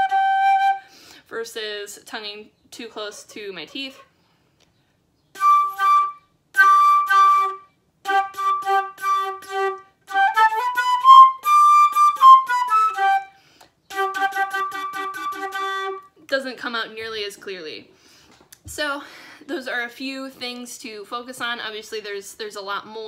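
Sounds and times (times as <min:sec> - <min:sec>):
flute playing tongued notes: 0:00.0 - 0:00.9, 0:05.4 - 0:16.1.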